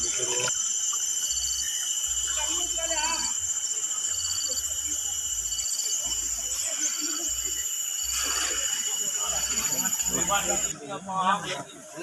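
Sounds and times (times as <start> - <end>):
high-pitched whine: 0.0 - 10.8
faint voices: 2.1 - 12.0.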